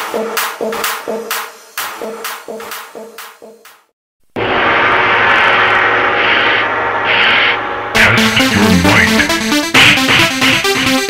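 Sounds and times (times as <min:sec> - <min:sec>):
ambient synthesizer drone: 0:04.4 - 0:09.7.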